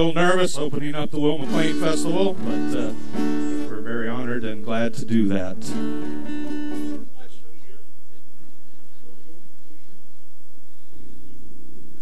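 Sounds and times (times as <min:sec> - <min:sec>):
acoustic guitar chord strummed: 0:00.0 - 0:12.0.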